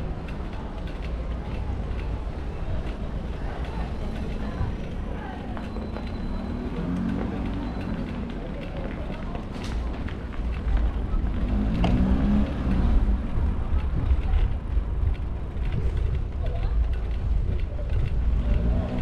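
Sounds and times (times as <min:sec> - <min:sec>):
motor traffic engine hum: 0:00.0 - 0:19.0
wind and road noise: 0:00.0 - 0:19.0.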